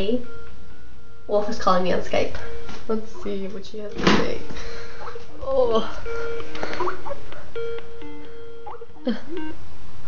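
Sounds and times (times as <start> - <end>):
electronic ringtone: 5.8 - 9.6.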